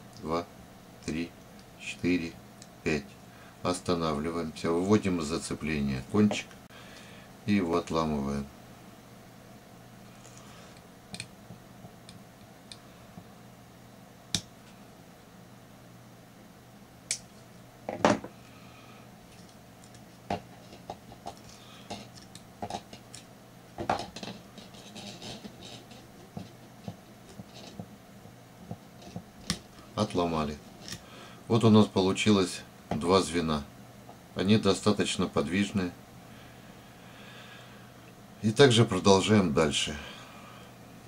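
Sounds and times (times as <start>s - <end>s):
faint steady hum: 0.0s - 41.0s
pliers and wire clicking: 10.2s - 11.3s, 20.7s - 23.3s, 30.8s - 31.0s.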